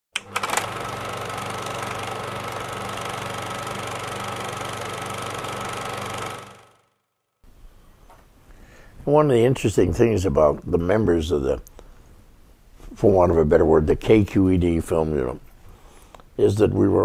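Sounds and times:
film projector whirring: 0:00.2 - 0:07.0.

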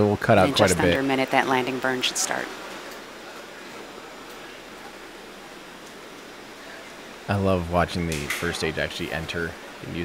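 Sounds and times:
static hiss: 0:00.0 - 0:10.0.

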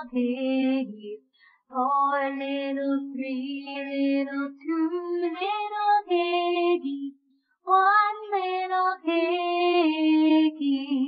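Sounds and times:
person singing unaccompanied: 0:00.0 - 0:07.1.

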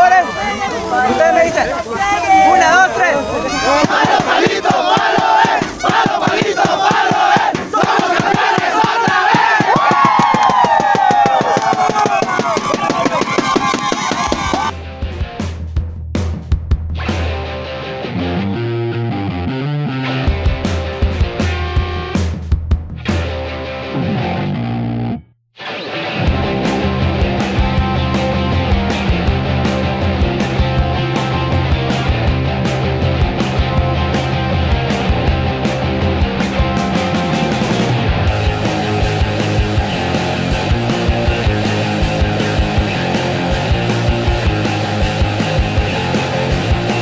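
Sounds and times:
men shouting a team chant: 0:00.0 - 0:09.8
rock music with guitar: 0:14.4 - 0:15.8, 0:16.6 - 0:47.0.

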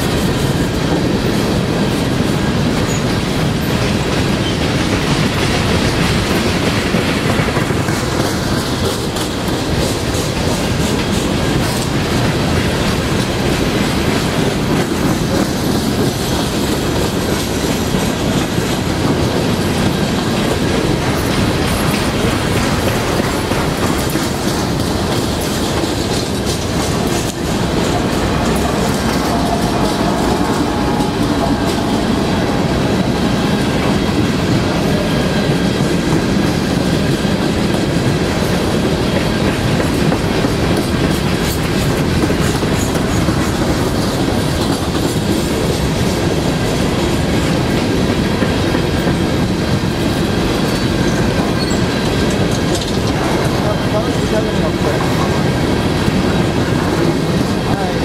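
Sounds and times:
train wheels rumbling on rail: 0:00.0 - 0:58.0
wheels clacking over rail joints: 0:00.0 - 0:58.0.

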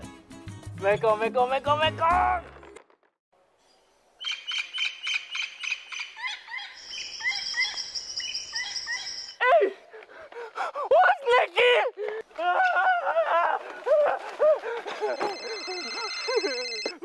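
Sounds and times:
birds chirping and whistling: 0:04.2 - 0:09.4
high-pitched bird trill: 0:04.2 - 0:09.4.

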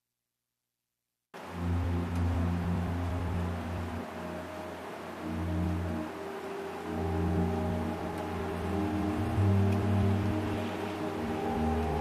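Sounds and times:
hissing wash: 0:01.4 - 0:12.0
sustained synth chords: 0:01.4 - 0:12.0.

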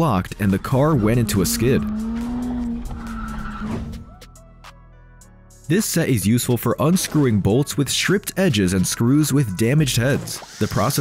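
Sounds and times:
background music: 0:00.0 - 0:11.0
tyres squealing: 0:00.4 - 0:04.1
car engine at high revs: 0:00.5 - 0:04.0.

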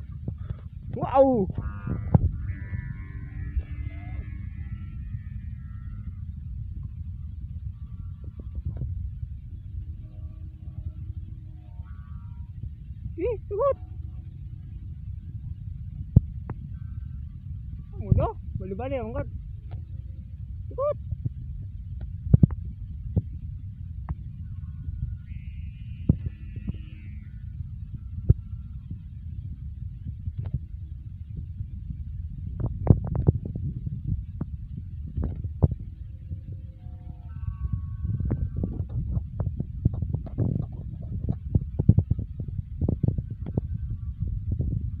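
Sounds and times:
wind buffeting a microphone: 0:00.0 - 0:45.0.

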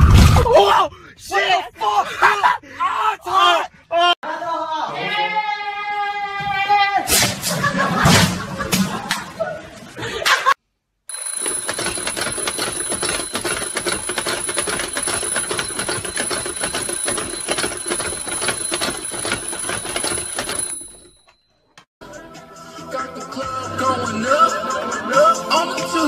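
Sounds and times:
alarm clock bells ringing: 0:11.1 - 0:21.6.

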